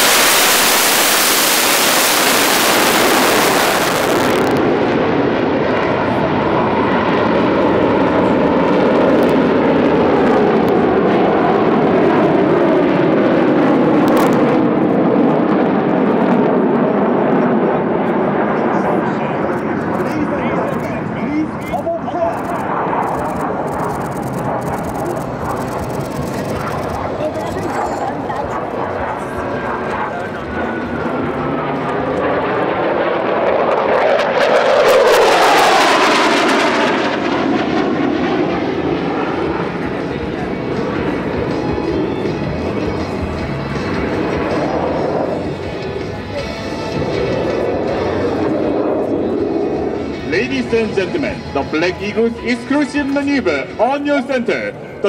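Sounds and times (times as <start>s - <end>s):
jet engines roaring overhead: 0.0s - 55.0s.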